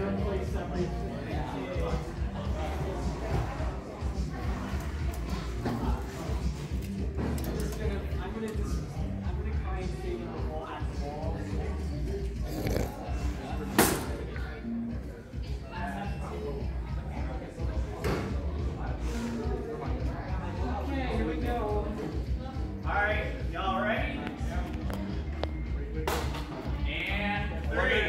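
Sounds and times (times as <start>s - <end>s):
background music: 0.0s - 28.0s
crowd chatter: 0.0s - 28.0s
voices in a large hall: 0.0s - 28.0s.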